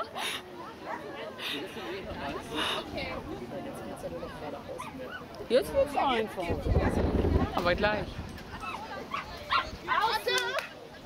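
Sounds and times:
dog barking: 0:08.6 - 0:10.0.

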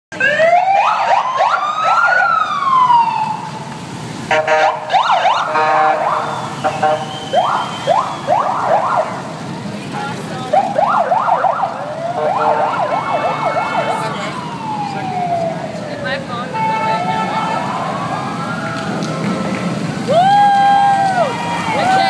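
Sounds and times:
low rumble of engines: 0:00.1 - 0:22.0
police sirens wailing and yelping: 0:00.1 - 0:22.0
buzzing horn blast: 0:05.5 - 0:07.2.

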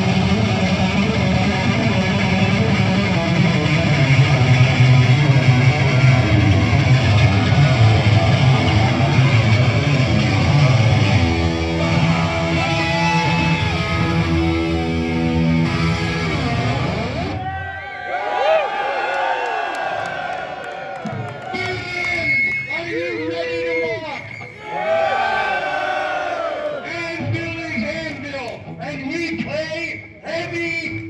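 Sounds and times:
electric guitar held notes: 0:00.0 - 0:17.4
heavy metal band playing: 0:00.0 - 0:17.4
people shouting and talking: 0:03.6 - 0:30.9.

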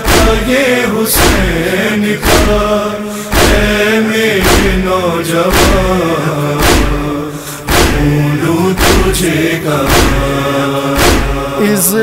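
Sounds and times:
sharp percussive beat: 0:00.0 - 0:11.7
voices chanting a lament: 0:00.0 - 0:12.0.

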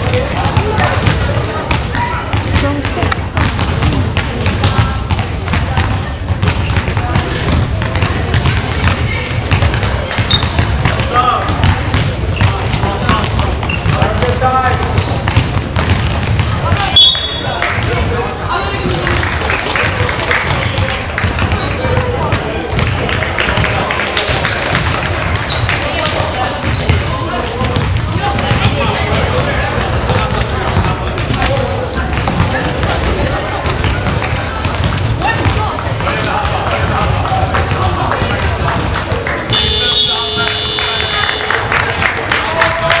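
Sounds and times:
ball bouncing on wooden floor: 0:00.0 - 0:18.1, 0:19.9 - 0:41.2
shoe squeaks: 0:10.2 - 0:10.6, 0:13.6 - 0:14.0, 0:17.0 - 0:17.5, 0:25.4 - 0:25.8, 0:26.4 - 0:27.3.

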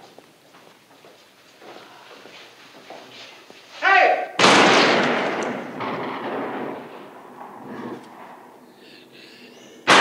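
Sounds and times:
person shouting: 0:03.8 - 0:04.4
loud gunshot: 0:04.4 - 0:07.2.

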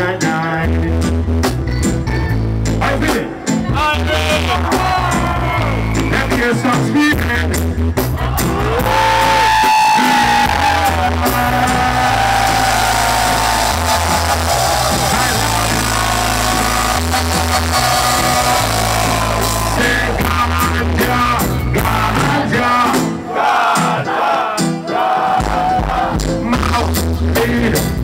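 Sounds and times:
live reggae band playing: 0:00.0 - 0:28.0
repeating bass line: 0:00.0 - 0:28.0.

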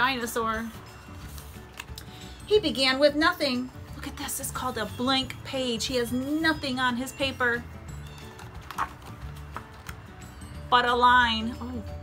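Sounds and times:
soft background music: 0:00.0 - 0:12.0
paper rustle: 0:01.2 - 0:01.9, 0:08.0 - 0:10.0
paper page turning: 0:01.2 - 0:02.0, 0:08.0 - 0:10.1.

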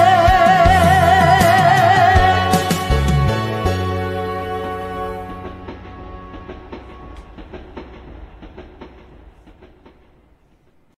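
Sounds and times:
rhythmic percussion hits: 0:00.0 - 0:11.0.

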